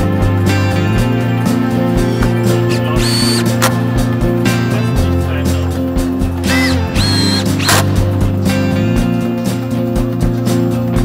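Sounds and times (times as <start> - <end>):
background music with bass line: 0.0 - 11.0
cordless drill whining: 3.0 - 3.8, 6.4 - 8.1.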